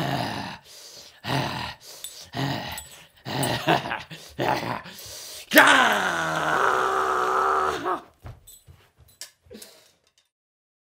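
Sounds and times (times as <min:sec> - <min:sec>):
man growling: 0:00.0 - 0:08.1.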